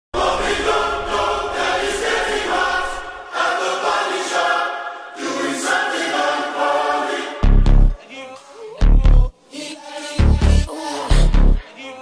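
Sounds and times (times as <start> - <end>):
choir-like vocal harmonies: 0.1 - 12.0.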